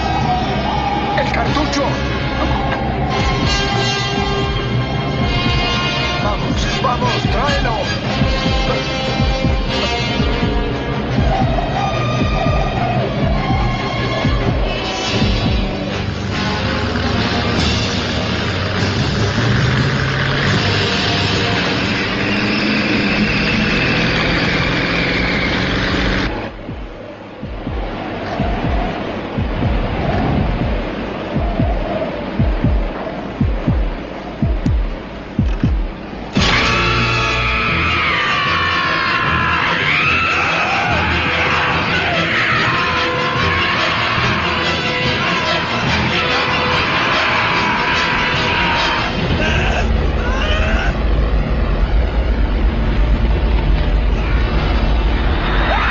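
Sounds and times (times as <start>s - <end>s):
loud orchestral film score: 0.0s - 26.6s, 36.2s - 55.9s
heavy truck engine at speed: 0.0s - 37.2s, 48.1s - 55.9s
road noise: 0.0s - 55.9s.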